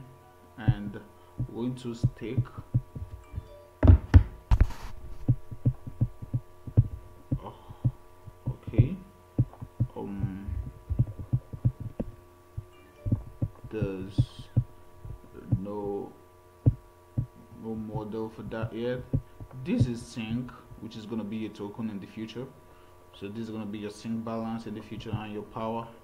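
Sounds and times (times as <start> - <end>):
steady electrical hum: 0.0 - 26.0.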